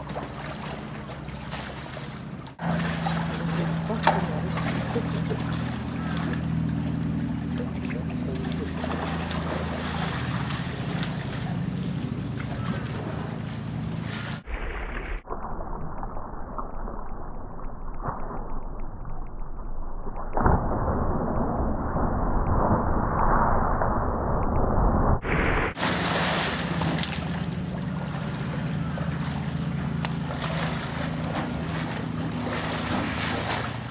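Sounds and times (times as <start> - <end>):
pool water splashing: 0.0 - 14.4, 25.8 - 33.9
steady low hum: 0.0 - 14.5, 23.7 - 33.9.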